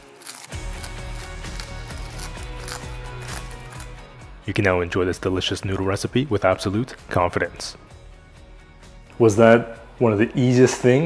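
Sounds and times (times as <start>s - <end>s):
seaweed crackling as torn: 0.0s - 4.1s
background music: 0.0s - 11.0s.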